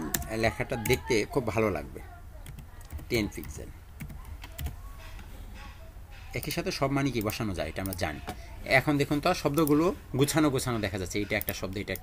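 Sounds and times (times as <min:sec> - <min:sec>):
typing on computer keyboard: 0:02.4 - 0:04.8.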